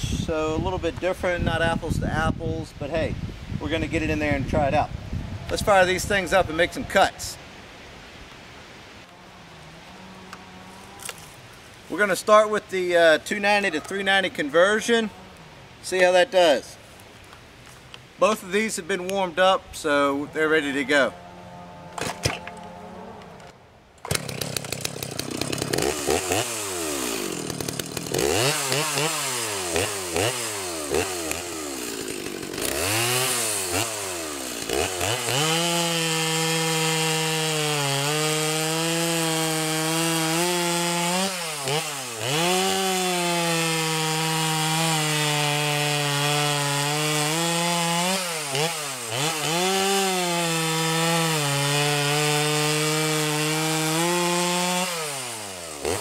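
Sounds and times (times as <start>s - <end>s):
chainsaw cutting through log: 24.0s - 56.0s
chainsaw revving: 24.0s - 56.0s.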